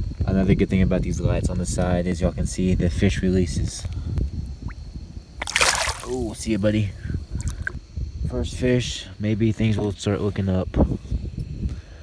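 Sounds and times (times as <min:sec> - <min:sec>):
fish splashing into water: 0:05.4 - 0:06.4.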